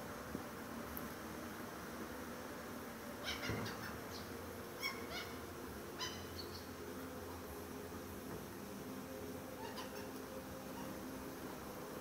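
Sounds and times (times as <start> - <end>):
gulls calling: 3.2 - 6.8, 9.5 - 11.2.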